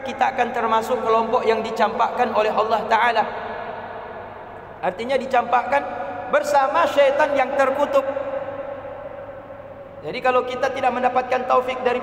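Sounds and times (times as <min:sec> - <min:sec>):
man speaking over loudspeakers: 0:00.0 - 0:03.4, 0:04.8 - 0:08.5, 0:10.0 - 0:12.0.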